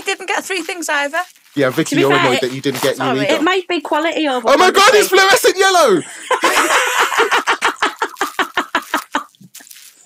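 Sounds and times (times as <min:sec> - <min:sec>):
rhythmic laughter: 0:06.0 - 0:09.4.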